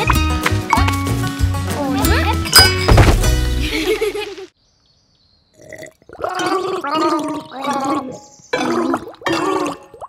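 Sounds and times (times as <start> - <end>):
cartoon voice gargling: 6.2 - 10.0.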